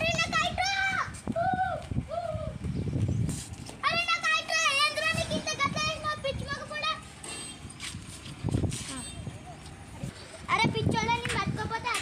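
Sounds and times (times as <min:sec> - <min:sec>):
children calling out: 0:00.0 - 0:02.6.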